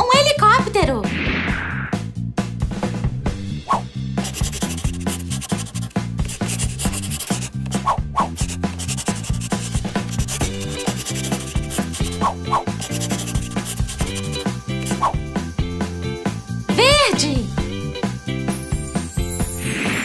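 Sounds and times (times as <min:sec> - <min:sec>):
background music with bass line: 0:00.4 - 0:19.8
crayon scribbling on paper: 0:04.2 - 0:15.1.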